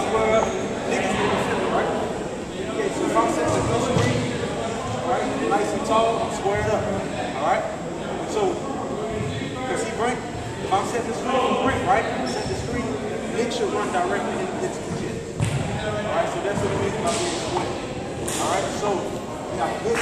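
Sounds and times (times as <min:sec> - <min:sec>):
people talking indistinctly: 0:00.0 - 0:20.0.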